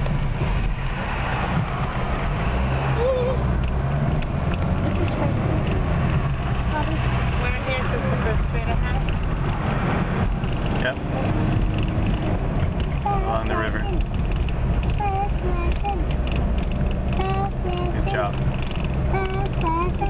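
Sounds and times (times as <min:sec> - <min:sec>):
car cabin road rumble: 0:00.0 - 0:20.0.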